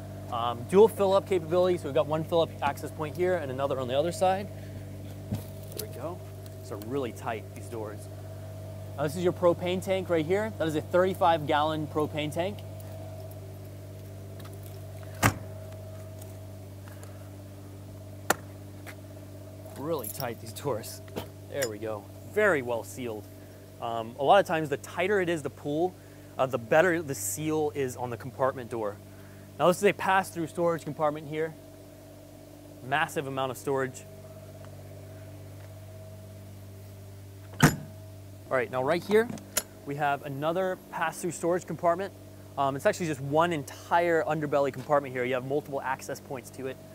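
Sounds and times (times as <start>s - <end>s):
steady low hum: 0.0s - 46.9s
compartment door banging shut: 15.2s - 15.5s, 37.6s - 37.9s.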